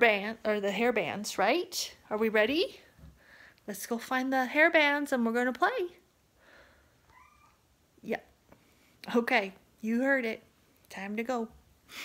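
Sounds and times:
cat meowing: 0:07.1 - 0:07.6.

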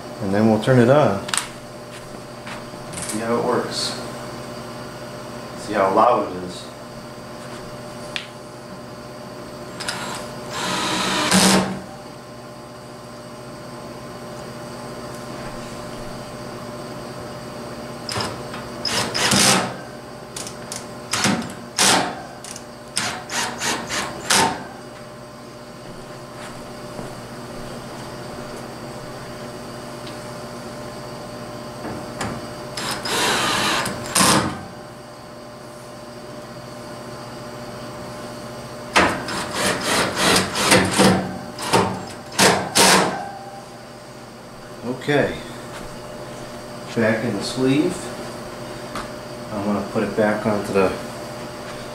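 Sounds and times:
steady hum: 0:00.0 - 0:51.9
drill driving screws into metal: 0:09.8 - 0:11.8, 0:18.1 - 0:19.8, 0:21.1 - 0:24.6, 0:32.8 - 0:34.6, 0:39.3 - 0:43.1.

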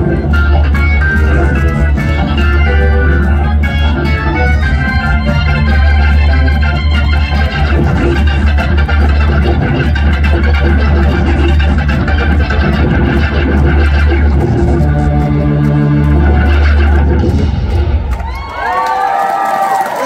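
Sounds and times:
live rock band: 0:00.0 - 0:18.1.

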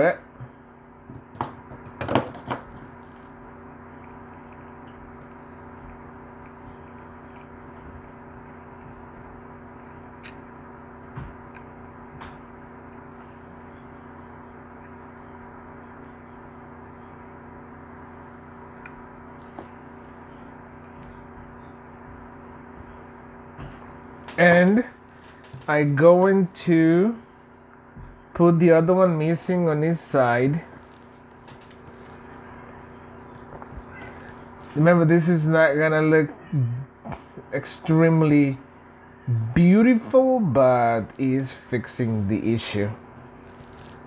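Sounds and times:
steady hum with held tones: 0:00.0 - 0:44.0.

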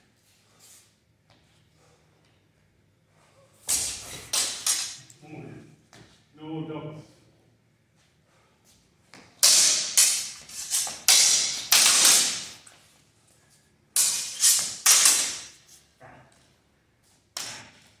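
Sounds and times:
steel swords clashing: 0:03.7 - 0:05.1, 0:09.4 - 0:12.6, 0:14.0 - 0:15.6.

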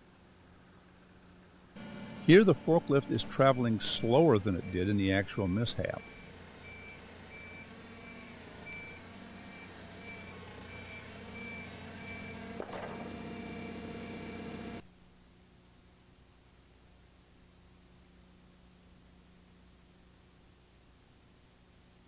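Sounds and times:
forklift engine running: 0:01.8 - 0:14.8
backup alarm beeping: 0:02.3 - 0:14.5.

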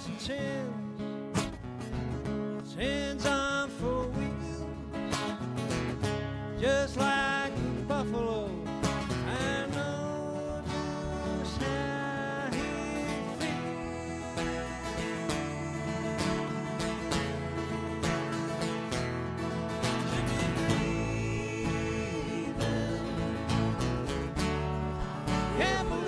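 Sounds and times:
strummed acoustic guitars: 0:00.0 - 0:26.0
person singing: 0:09.3 - 0:26.0.

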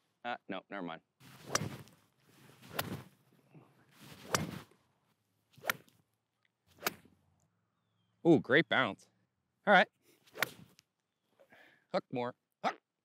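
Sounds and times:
swishing whooshes with cracks: 0:01.3 - 0:03.2, 0:04.0 - 0:04.7, 0:10.3 - 0:10.7.

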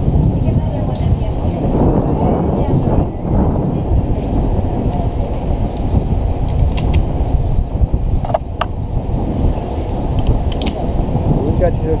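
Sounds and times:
wind buffeting microphone: 0:00.0 - 0:12.0
metallic carabiner clicks: 0:06.4 - 0:07.1, 0:10.2 - 0:10.8.

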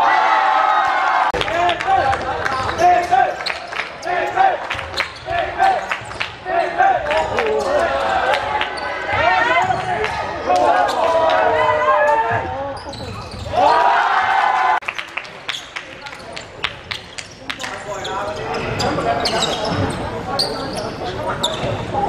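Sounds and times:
players' voices: 0:01.3 - 0:22.0
sneakers squeaking on floor: 0:02.2 - 0:13.9, 0:15.5 - 0:22.0.

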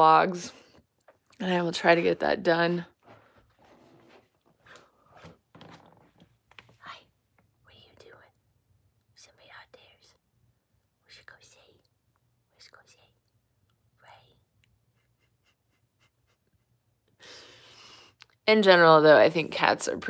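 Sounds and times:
faint whispers: 0:06.7 - 0:08.4, 0:09.2 - 0:10.2, 0:11.0 - 0:13.3, 0:14.0 - 0:14.5.

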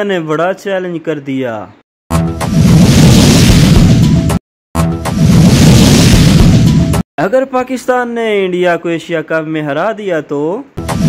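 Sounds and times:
explosion sound effect: 0:02.1 - 0:07.0, 0:10.8 - 0:11.0.

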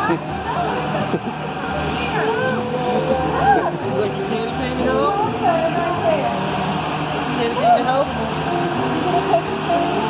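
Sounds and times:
low engine hum: 0:00.0 - 0:10.0
people talking and calling out: 0:00.0 - 0:10.0.

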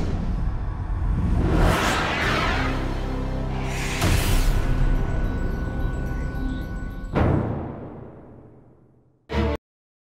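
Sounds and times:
swelling whoosh: 0:00.0 - 0:04.8.

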